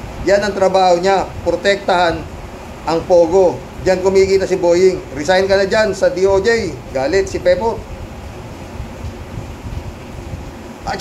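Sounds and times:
rain falling heard from indoors: 0.0 - 11.0.

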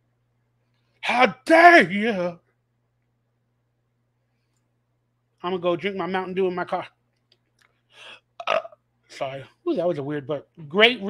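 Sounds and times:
faint breath: 7.9 - 8.2
man burping: 8.4 - 8.8.

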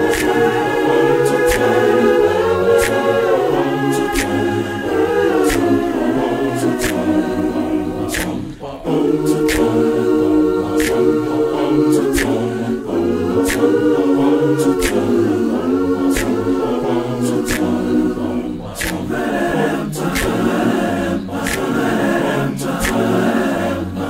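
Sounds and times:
sharp ticks keeping beat: 0.0 - 23.6
male a cappella group singing: 0.0 - 24.0.

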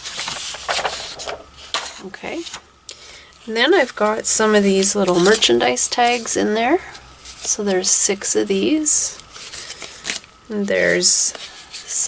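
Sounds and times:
paper crackles: 0.0 - 2.6
paper sheets rustling: 0.0 - 2.7, 3.8 - 6.3.

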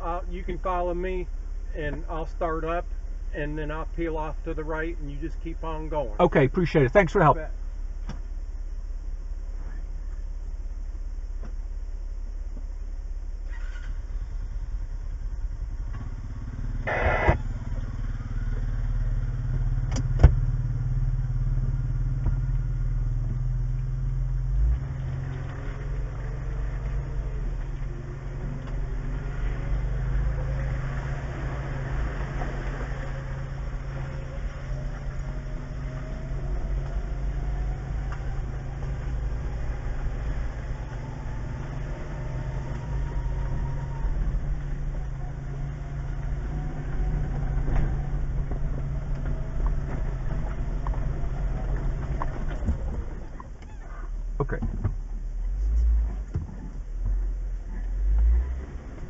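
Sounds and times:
engine tone climbing: 0.0 - 8.2, 13.2 - 59.0
car engine idling: 0.0 - 58.6
short loud burst: 16.8 - 17.6.

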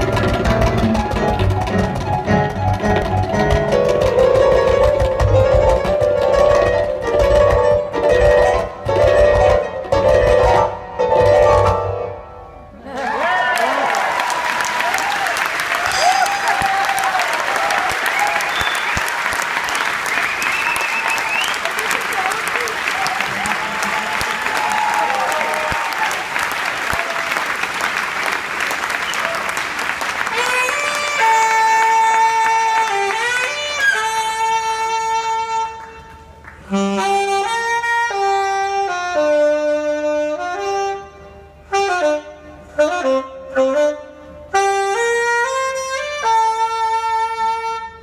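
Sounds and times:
audience applauding and cheering: 12.8 - 34.0
tenor saxophone long notes: 30.2 - 48.0.

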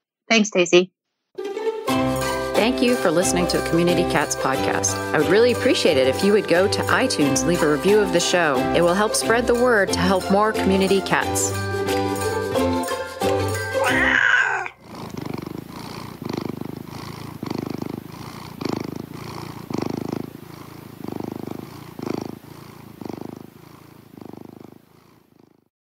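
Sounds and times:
outro music: 1.4 - 14.0
cat purring: 2.6 - 12.3, 13.8 - 25.7.

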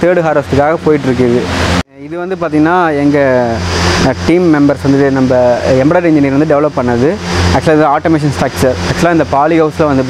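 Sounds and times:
person speaking: 0.0 - 10.0
steady low hum: 0.0 - 10.0.

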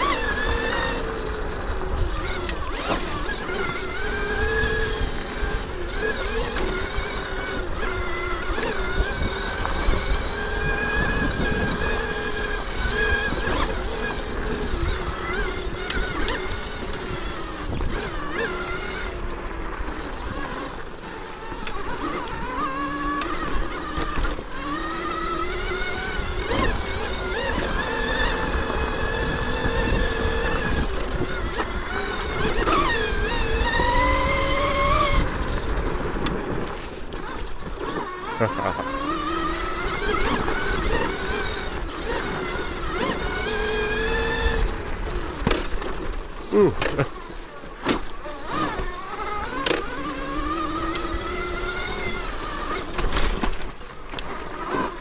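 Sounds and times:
electric motor whining: 0.0 - 55.0.

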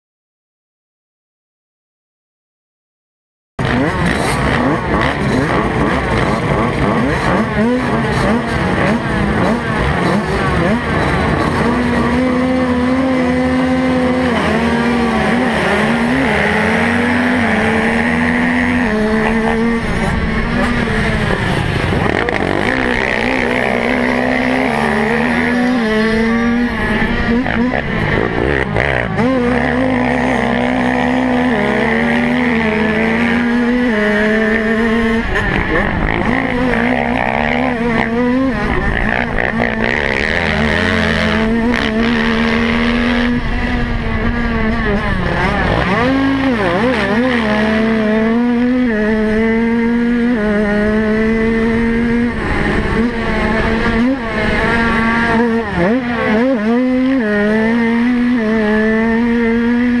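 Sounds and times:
motocross bike engine revving: 3.6 - 60.0.

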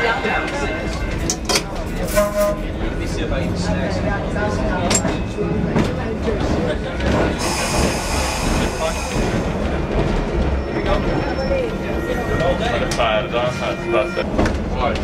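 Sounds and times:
streetcar rumble: 0.0 - 15.0
high metallic squeal: 10.6 - 14.4.

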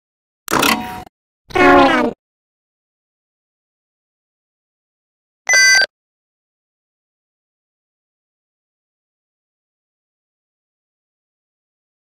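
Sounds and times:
cartoon character voice sounds: 1.5 - 2.2.

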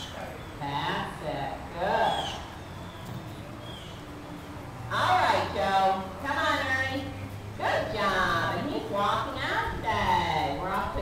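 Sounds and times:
open-air background: 0.0 - 11.0.

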